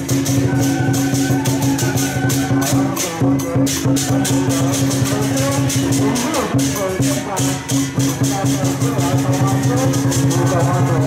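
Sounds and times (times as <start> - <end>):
fast percussion beat: 0.0 - 11.0.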